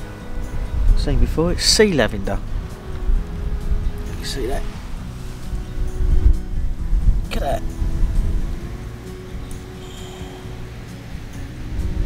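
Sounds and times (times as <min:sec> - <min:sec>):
background music: 0:00.0 - 0:12.0
wind buffeting microphone: 0:00.0 - 0:12.0.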